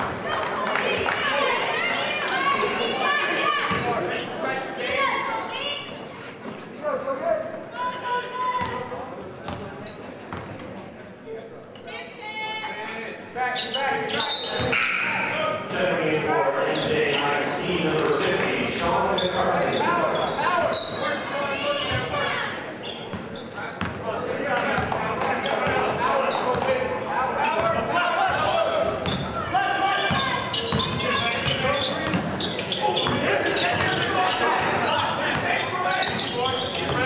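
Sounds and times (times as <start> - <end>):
indistinct shouting and chatter: 0.0 - 10.1, 11.8 - 37.0
shoe squeaks: 9.8 - 10.3, 13.5 - 15.4, 19.2 - 22.0, 22.8 - 23.6, 29.0 - 37.0.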